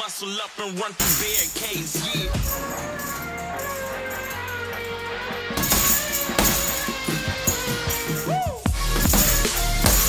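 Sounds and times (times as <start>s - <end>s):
hip-hop track: 0.0s - 10.0s.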